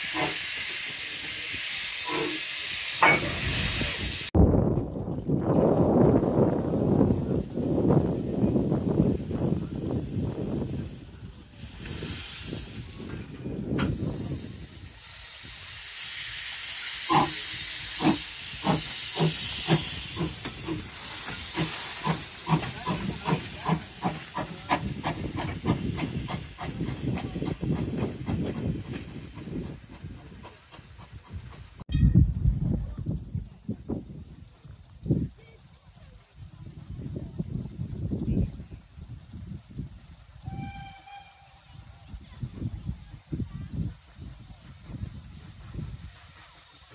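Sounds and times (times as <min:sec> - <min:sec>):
steam hissing from locomotive: 0:00.0 - 0:04.4, 0:06.8 - 0:31.9, 0:34.0 - 0:46.9
steam locomotive exhaust beats: 0:00.0 - 0:46.9.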